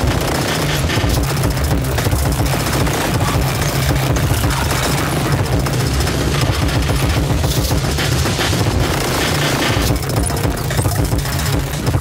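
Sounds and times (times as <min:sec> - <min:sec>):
distorted noise music: 0:00.0 - 0:12.0
heavy low rumble: 0:00.0 - 0:12.0.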